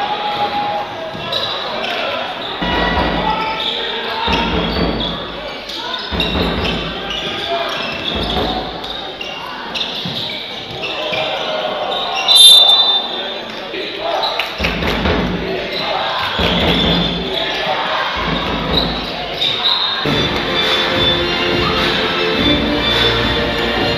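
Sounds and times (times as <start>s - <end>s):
voices: 0.0s - 23.9s
short high whistle blast: 12.3s - 13.0s.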